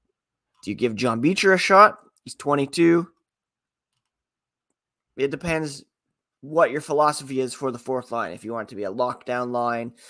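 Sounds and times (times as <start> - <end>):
man speaking: 0.6 - 3.2, 5.2 - 10.0.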